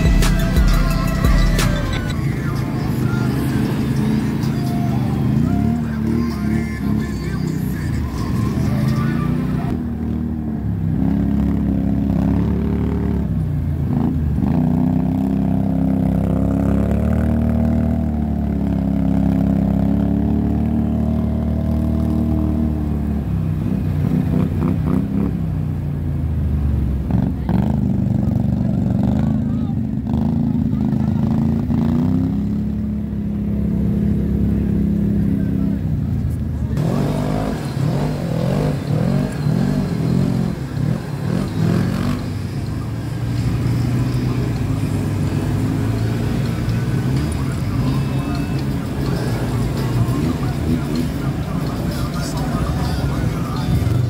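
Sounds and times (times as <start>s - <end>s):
atv engines revving: 0.0s - 54.0s.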